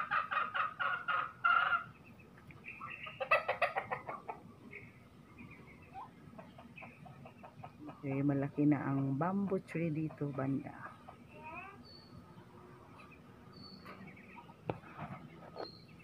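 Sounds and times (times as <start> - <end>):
chickens clucking: 0.0 - 16.0.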